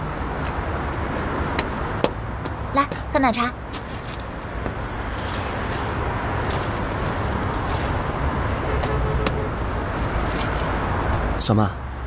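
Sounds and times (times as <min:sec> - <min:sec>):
distant traffic rumble: 0:00.0 - 0:12.0
young woman speaking: 0:02.7 - 0:03.6.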